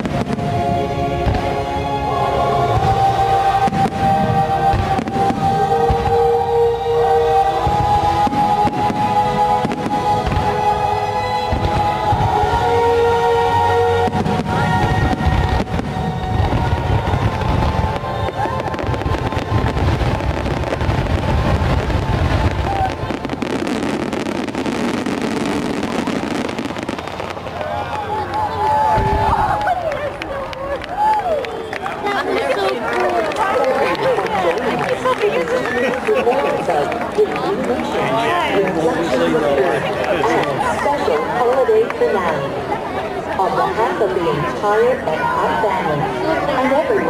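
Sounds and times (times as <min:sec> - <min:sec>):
fireworks booming and crackling: 0:00.0 - 0:02.0, 0:02.7 - 0:30.9
music playing: 0:00.0 - 0:29.5
crowd chattering: 0:00.0 - 0:47.0.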